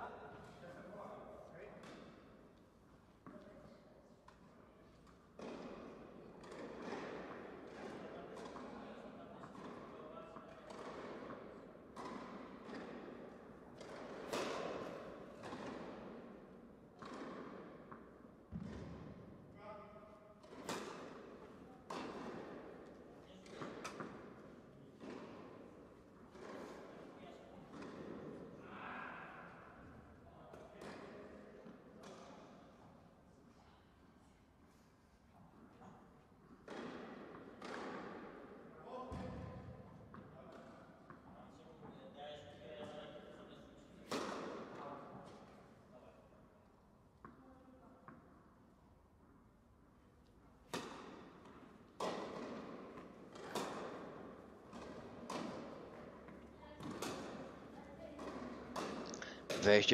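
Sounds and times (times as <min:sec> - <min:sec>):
tennis ball hitting rackets: 0:05.0 - 0:08.7, 0:10.4 - 0:13.2, 0:13.8 - 0:16.2, 0:17.0 - 0:19.1, 0:20.4 - 0:27.0, 0:36.6 - 0:38.4, 0:44.0 - 0:45.4, 0:50.7 - 0:59.6.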